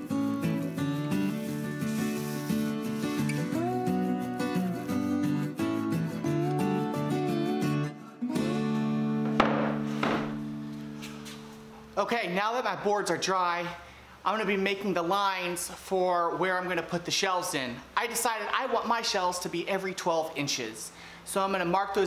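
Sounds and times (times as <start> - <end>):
background music melody over bass: 0.0 - 11.9.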